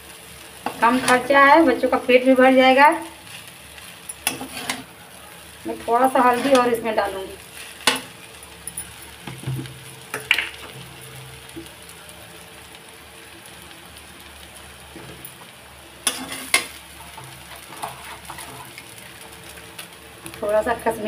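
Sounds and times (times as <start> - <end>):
noodles sizzling in a pan: 0.0 - 21.0
metal utensil scraping a pan: 0.6 - 1.3, 3.3 - 5.0, 6.0 - 8.2, 16.0 - 18.9.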